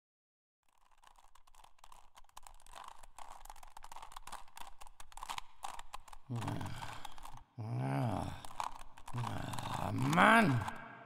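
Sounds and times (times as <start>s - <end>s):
puzzle cube clicking and scraping: 0.6s - 10.8s.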